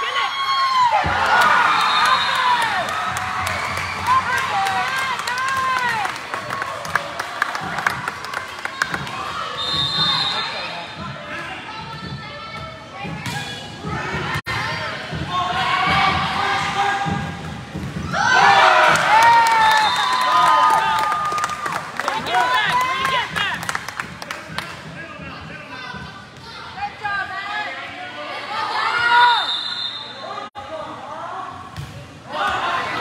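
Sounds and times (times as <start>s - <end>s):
people shouting and cheering: 0.0s - 12.4s, 13.8s - 17.4s, 18.0s - 23.7s, 32.3s - 33.0s.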